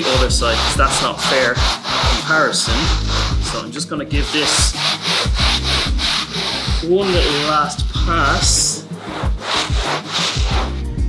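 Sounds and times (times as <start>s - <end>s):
background music with steady beat: 0.0s - 11.0s
brush scrubbing wet rug: 0.0s - 11.0s.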